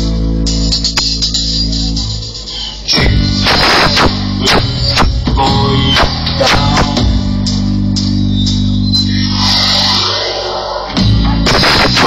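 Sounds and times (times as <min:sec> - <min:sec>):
low bass drone: 0:01.8 - 0:12.0
hissing high noise: 0:02.5 - 0:07.0, 0:09.0 - 0:12.0.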